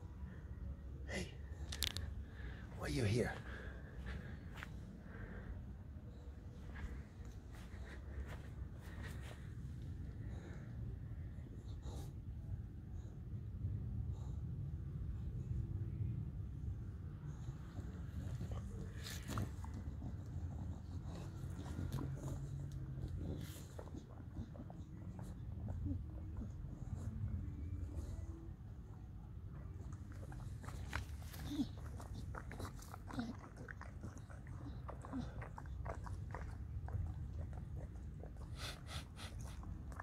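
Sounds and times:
dog licking and chewing soil: 0:17.4 - 0:40.0
dog snorting: 0:17.5 - 0:28.4, 0:29.7 - 0:40.0
dog snuffling: 0:35.0 - 0:40.0.

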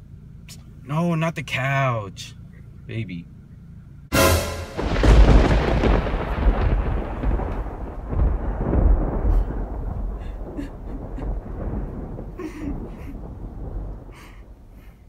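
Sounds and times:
thunder rumbling: 0:04.2 - 0:15.0.

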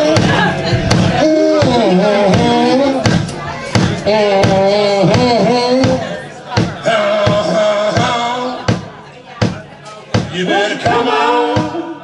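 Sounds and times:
sparse drum hits: 0:00.1 - 0:04.6.

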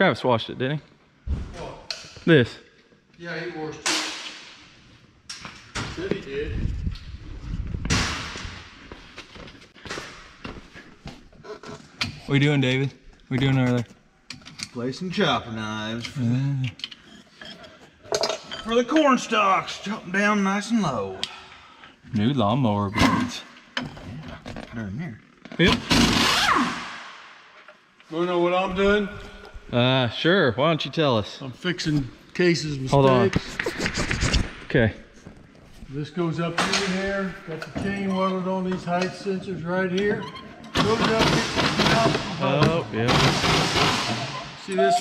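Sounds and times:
impact wrench burst: 0:25.6 - 0:27.1, 0:40.8 - 0:44.4.

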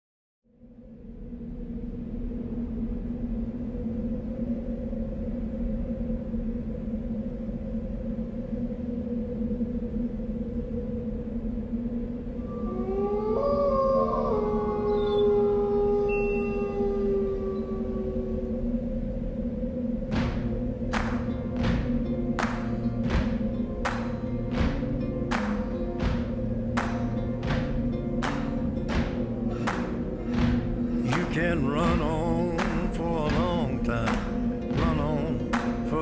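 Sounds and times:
low drone: 0:00.5 - 0:36.0
higher held tone: 0:12.4 - 0:18.5
siren-like wail: 0:12.4 - 0:19.4.

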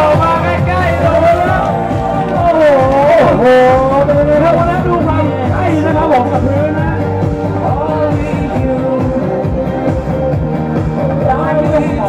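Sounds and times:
loud background music: 0:00.0 - 0:12.0.

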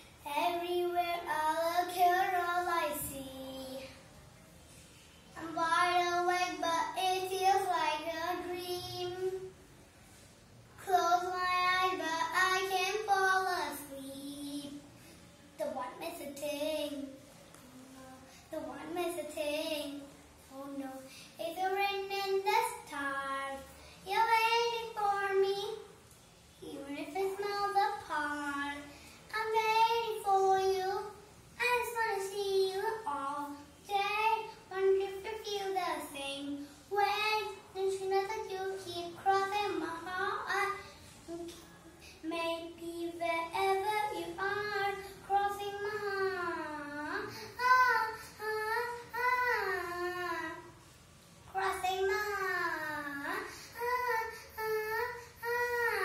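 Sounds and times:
girl singing unaccompanied: 0:00.0 - 0:04.1, 0:05.3 - 0:10.2, 0:10.8 - 0:50.9, 0:51.5 - 0:56.0.

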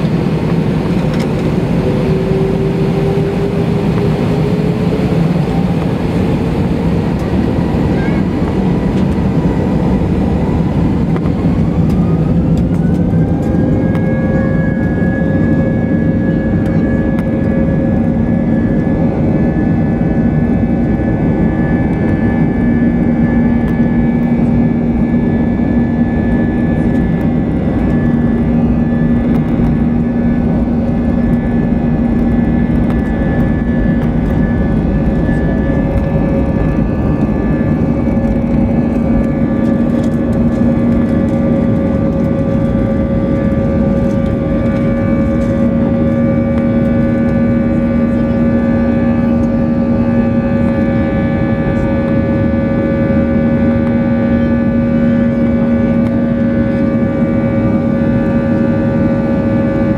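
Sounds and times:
jet engines at takeoff power: 0:00.0 - 0:59.9.

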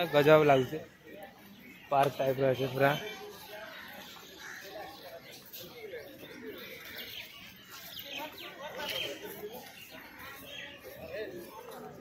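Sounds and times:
birds chirping: 0:00.0 - 0:12.0
people talking: 0:00.0 - 0:12.0.

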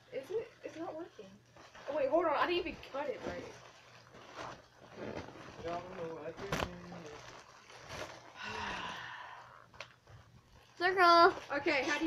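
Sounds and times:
breathy rush of air: 0:08.4 - 0:09.6.

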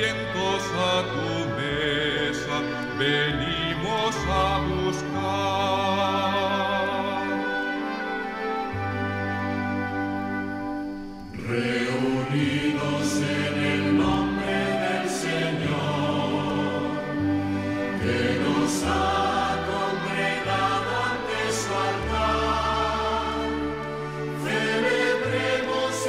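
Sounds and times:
choir singing a hymn: 0:00.0 - 0:10.4, 0:11.2 - 0:26.0
orchestral accompaniment: 0:00.0 - 0:26.0.

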